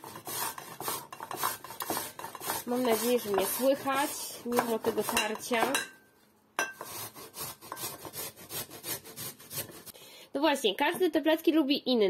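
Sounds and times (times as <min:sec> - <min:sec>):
potato grated on metal grater: 0:00.0 - 0:05.8, 0:06.7 - 0:09.9.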